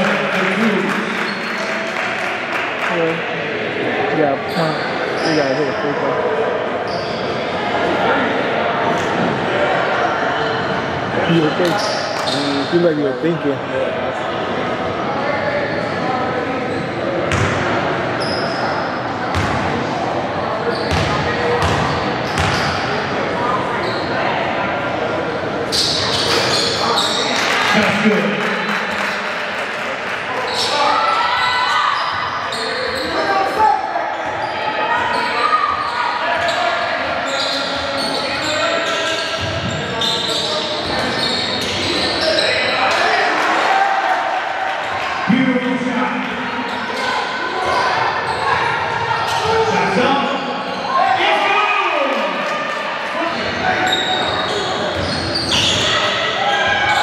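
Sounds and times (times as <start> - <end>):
basketball bouncing on court: 17.3 - 17.6, 19.3 - 19.7, 20.9 - 22.8.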